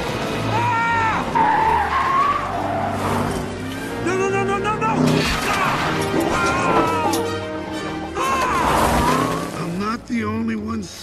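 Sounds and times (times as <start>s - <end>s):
tyres squealing: 0.5s - 7.3s.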